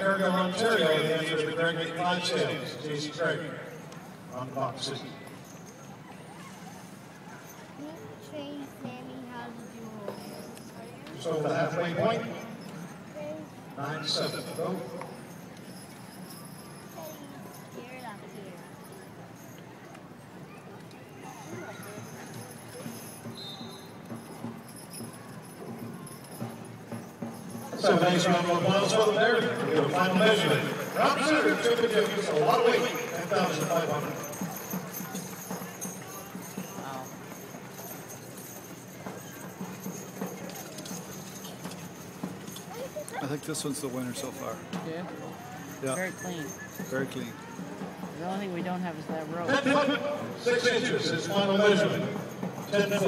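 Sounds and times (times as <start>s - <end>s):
horse hooves clopping: 0.0s - 53.0s
murmur of distant voices: 0.0s - 53.0s.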